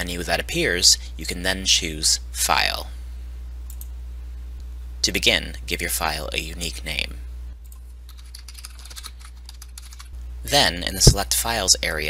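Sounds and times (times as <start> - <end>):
low steady hum: 0.0 - 12.0
keyboard typing: 7.6 - 10.2.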